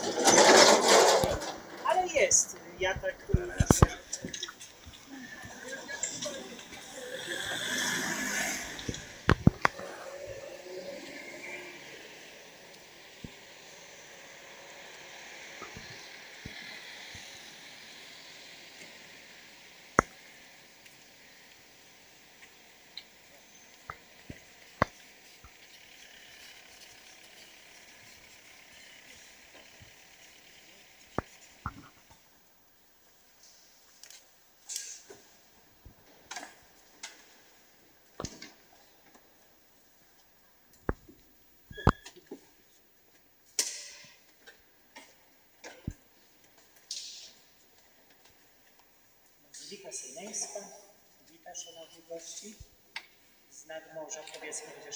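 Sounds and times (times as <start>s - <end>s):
rush of noise: 6.6s - 16.2s.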